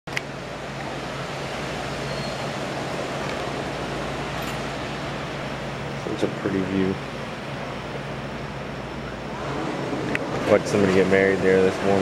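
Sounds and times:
low steady hum: 0.1 - 12.0
ocean surf breaking: 0.3 - 6.3, 7.0 - 12.0.

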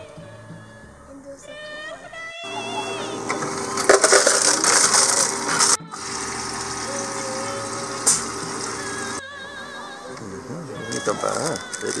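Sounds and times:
background music: 0.0 - 12.0
steady hum: 2.4 - 12.0
soda fountain hiss: 2.5 - 12.0.

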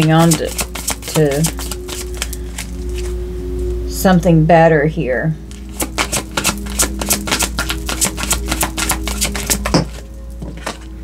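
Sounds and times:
cards shuffling: 0.0 - 3.2, 5.5 - 11.0.

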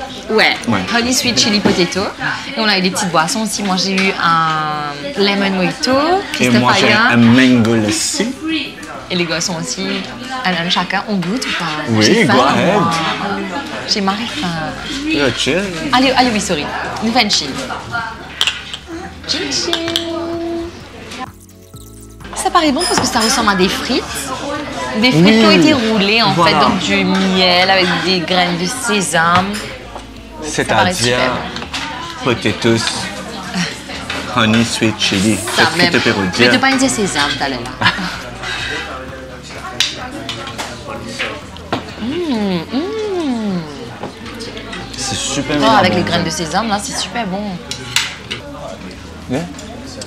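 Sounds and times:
restaurant chatter: 0.0 - 50.0
dishes and cutlery clattering: 17.6 - 18.9, 21.1 - 24.6, 31.4 - 42.0, 47.7 - 49.0
cutlery clicking on plates: 18.3 - 18.9, 21.3 - 23.6, 39.8 - 41.8, 47.7 - 48.5
drinking glasses clinking: 21.3 - 23.7.

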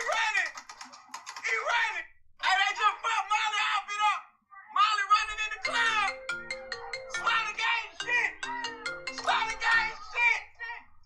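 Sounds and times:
voices: 0.0 - 11.0
simple melody music: 5.5 - 10.2.

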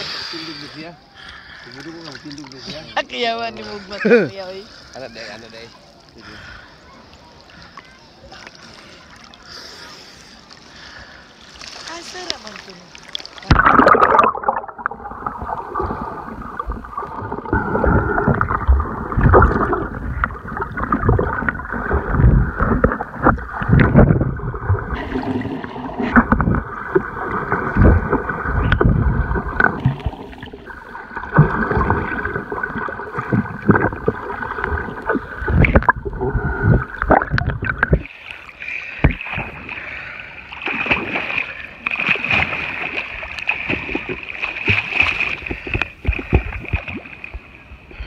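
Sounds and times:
swimmers splashing above water: 0.0 - 47.8
underwater splashing and bubbling: 6.9 - 48.0
dull underwater thumps: 13.4 - 30.4, 31.2 - 38.1, 39.0 - 39.4.

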